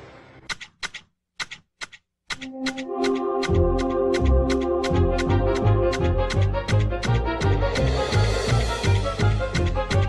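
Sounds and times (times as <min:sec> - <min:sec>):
pruning shears snipping: 0:00.5 - 0:08.0.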